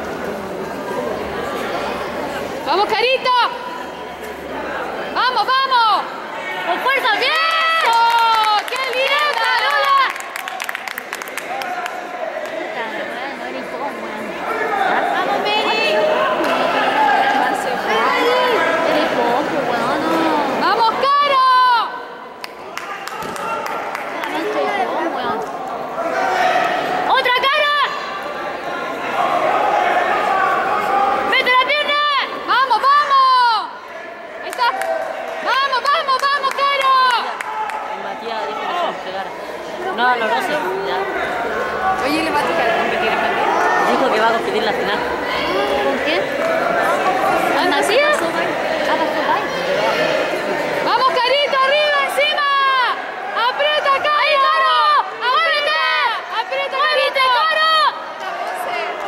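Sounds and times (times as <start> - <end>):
crowd chatter: 0.0 - 59.0
spectators shouting: 2.7 - 13.1, 14.2 - 59.0.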